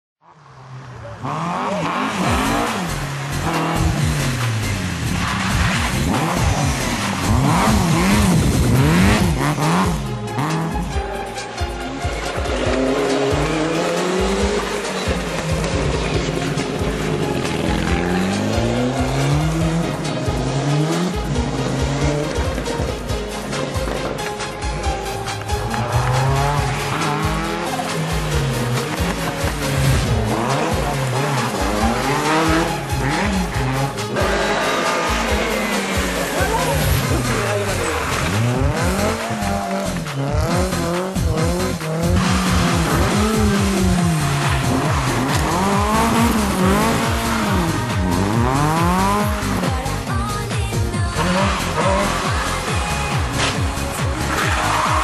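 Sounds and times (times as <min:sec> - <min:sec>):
rally car accelerating: 0:00.2 - 0:11.0, 0:11.9 - 0:55.0
rally car engine revving: 0:00.2 - 0:11.0, 0:12.2 - 0:55.0.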